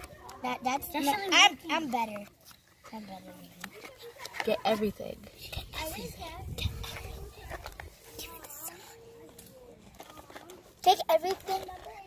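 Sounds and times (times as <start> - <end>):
children talking faintly: 2.7 - 12.0.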